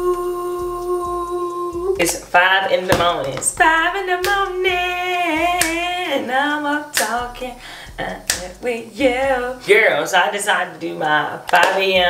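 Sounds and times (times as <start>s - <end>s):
woman humming: 0.0s - 2.1s.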